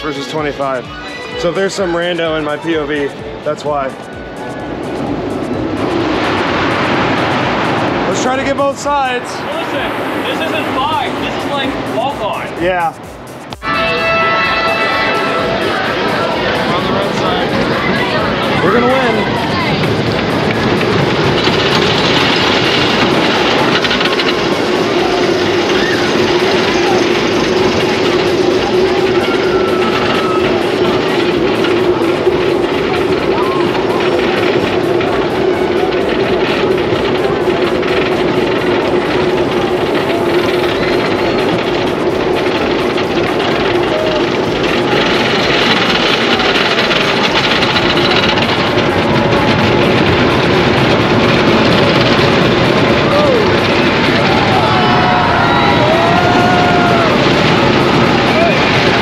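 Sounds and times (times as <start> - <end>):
roller coaster train rumbling down track: 0.0 - 59.0
roller coaster chain lift clatter: 1.4 - 12.9, 13.8 - 59.0.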